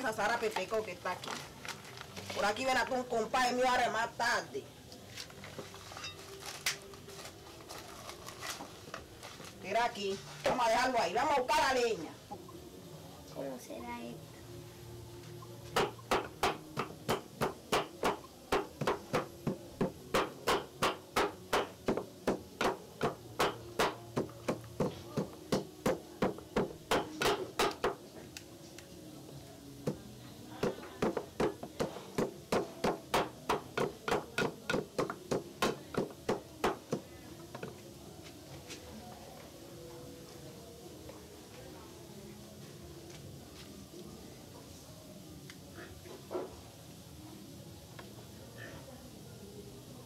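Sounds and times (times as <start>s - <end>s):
wooden pestle pounding in mortar: 15.8s - 28.0s, 30.6s - 37.0s.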